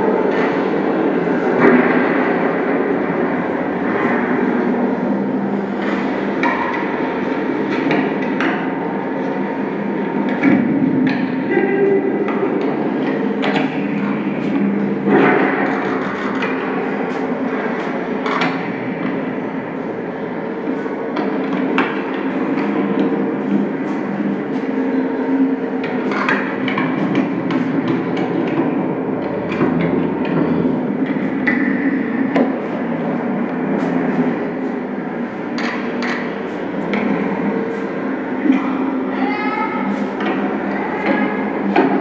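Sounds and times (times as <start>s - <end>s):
steady drone with low hum: 0.0s - 42.0s.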